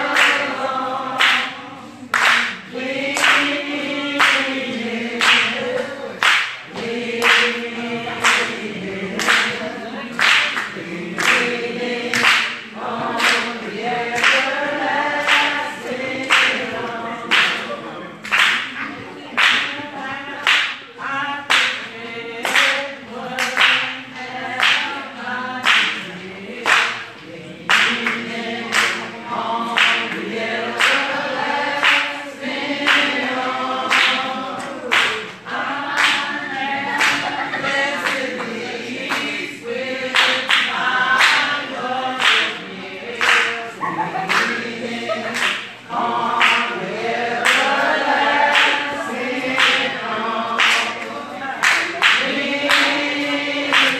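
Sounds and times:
congregation singing: 0.0 - 53.9
hands clapping a steady beat: 0.0 - 53.9.

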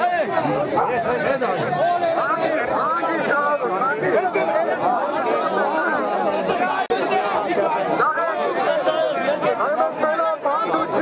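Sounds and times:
crowd of men talking: 0.0 - 11.0.

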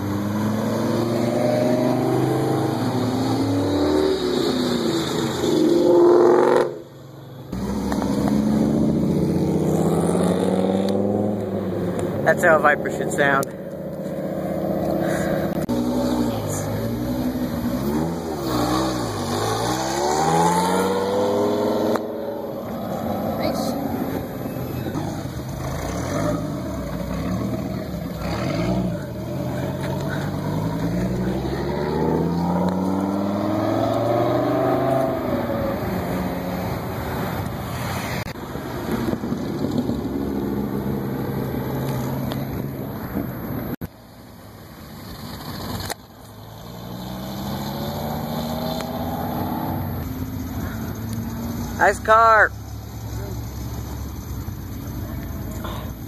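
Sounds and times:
car engines accelerating past: 0.0 - 43.8, 44.9 - 55.7.

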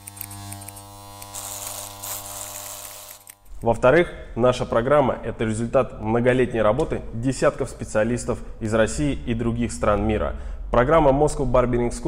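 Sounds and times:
electric hair clippers buzzing: 0.0 - 3.6.

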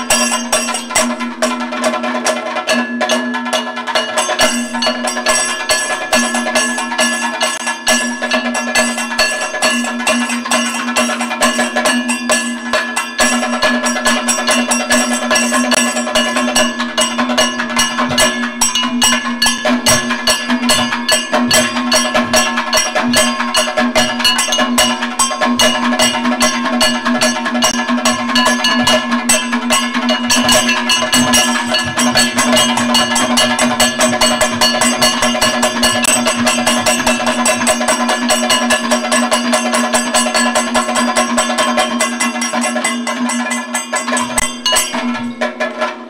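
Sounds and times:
fast drumming: 0.0 - 46.0.

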